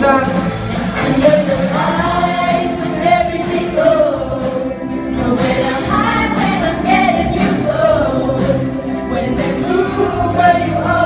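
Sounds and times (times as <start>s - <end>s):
choir singing pop song: 0.0s - 11.0s
live band with drums and horns: 0.0s - 11.0s.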